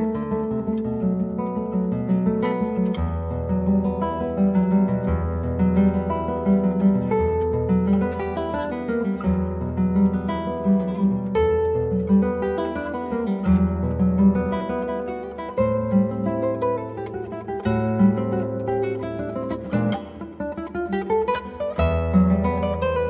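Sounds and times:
classical guitar fingerstyle: 0.0s - 23.0s.

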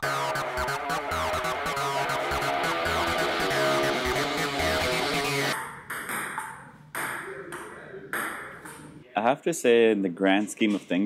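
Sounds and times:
table tennis ball knocking: 5.6s - 8.8s.

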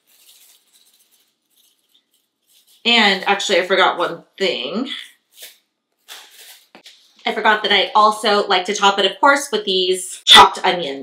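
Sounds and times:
seasoning shaken in shaker jar: 0.0s - 3.4s.

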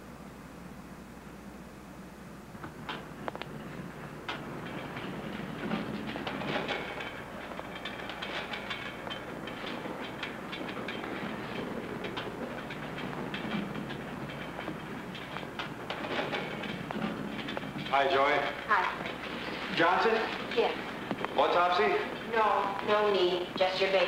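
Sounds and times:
gurney rattling on hard floor: 2.6s - 24.0s.

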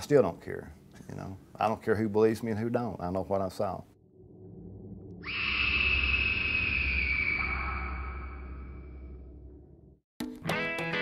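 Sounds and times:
low rumble: 4.0s - 10.0s
high screech sliding down: 5.2s - 9.2s.

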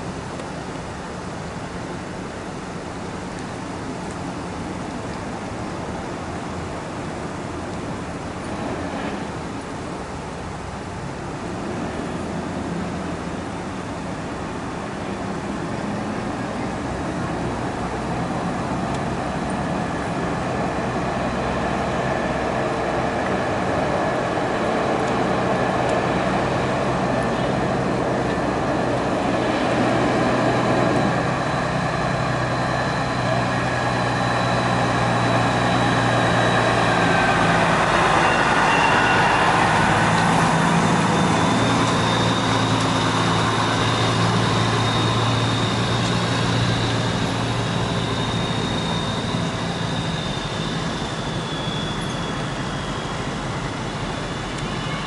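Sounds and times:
diesel truck engine humming: 0.0s - 55.0s
vehicles rolling past: 0.0s - 55.0s.

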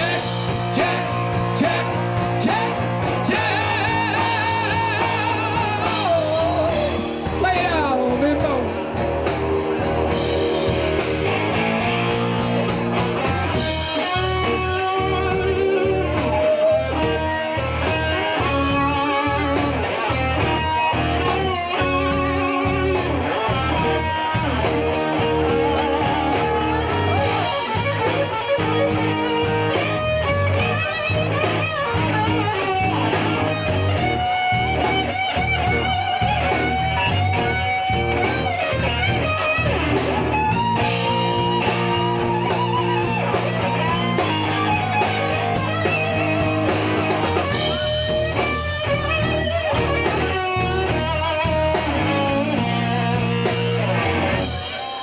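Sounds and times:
electric guitar melody: 0.0s - 55.0s
steady drum beat: 0.0s - 55.0s.

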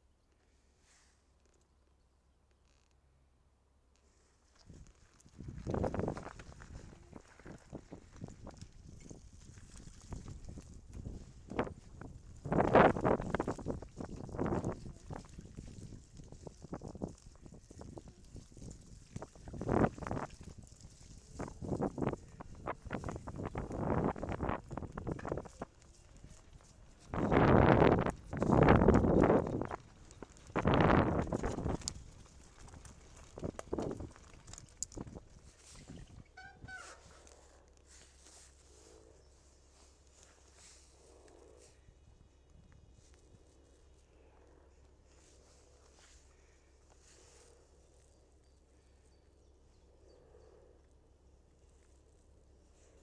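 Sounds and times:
bicycle rattling over rough track: 4.0s - 49.5s.

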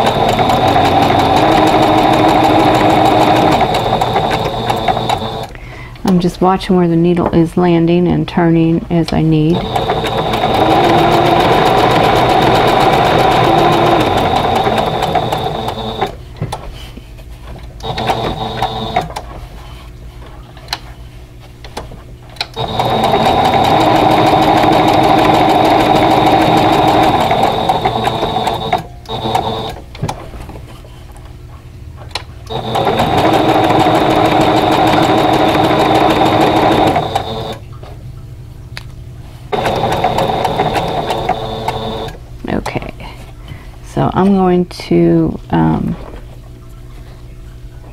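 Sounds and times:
sewing machine stitching: 0.0s - 5.5s, 9.4s - 16.2s, 17.8s - 19.2s, 22.4s - 29.8s, 32.5s - 37.7s, 39.5s - 42.2s.

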